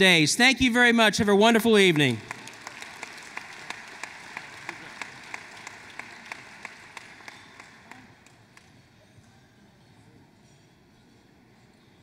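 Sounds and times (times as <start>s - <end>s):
audience applauding: 2.1s - 8.7s
nearby hands clapping: 2.2s - 8.8s.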